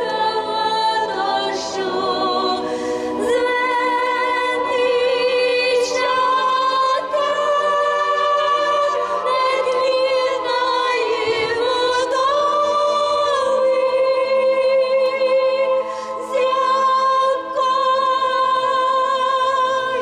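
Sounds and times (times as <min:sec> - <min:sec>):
woman singing unaccompanied: 0:00.0 - 0:20.0.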